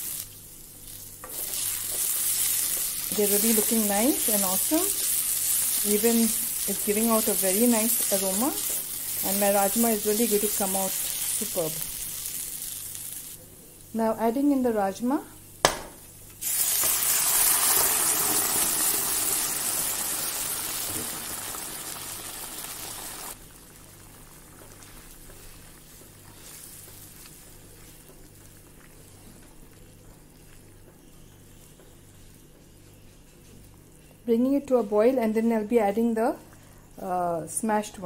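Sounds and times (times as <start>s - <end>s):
food sizzling in a pan: 0.0s - 13.4s, 16.4s - 29.3s.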